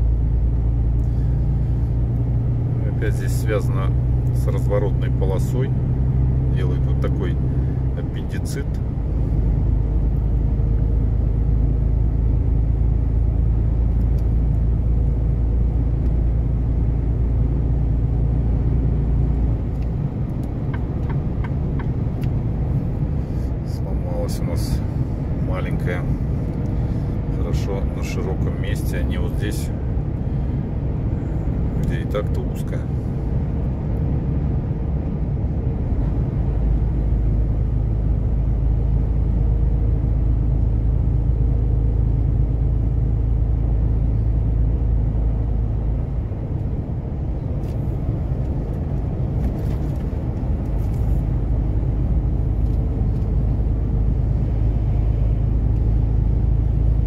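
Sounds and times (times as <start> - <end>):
truck engine and tyre drone: 0.0 - 57.0.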